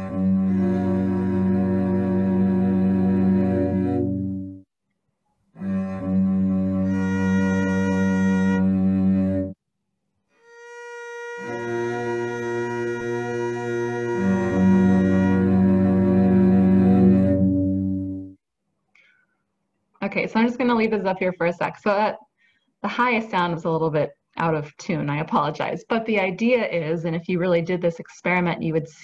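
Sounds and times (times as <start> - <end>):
sustained string tones: 0.0 - 4.6, 5.6 - 9.6, 10.4 - 18.4.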